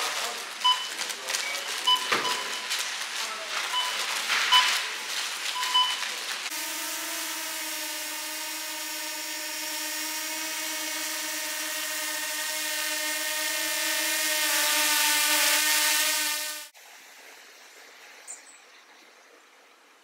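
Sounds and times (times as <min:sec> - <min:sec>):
drone propellers whining: 0:05.6 - 0:16.7.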